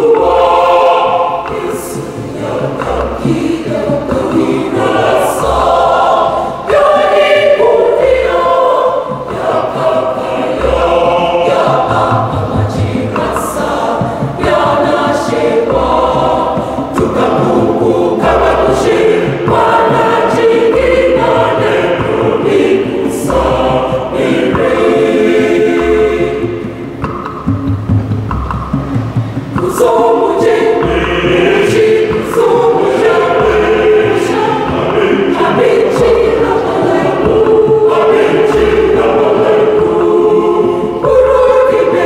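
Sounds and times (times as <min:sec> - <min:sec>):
church choir singing: 0:00.0 - 0:27.4, 0:29.4 - 0:42.0.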